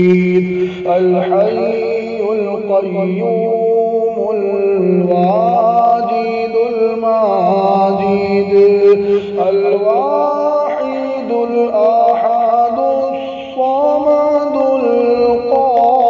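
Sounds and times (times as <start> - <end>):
man chanting melodically: 0.0 - 16.0.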